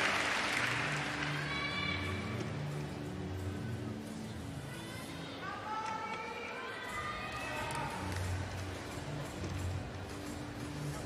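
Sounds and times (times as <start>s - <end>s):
crowd applause: 0.0s - 1.7s.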